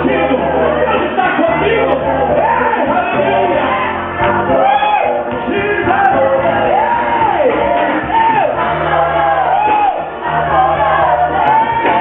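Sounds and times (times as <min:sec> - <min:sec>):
held chords and bass line: 0:00.0 - 0:12.0
lead singer's voice gliding: 0:00.0 - 0:12.0
group shouting: 0:06.6 - 0:12.0.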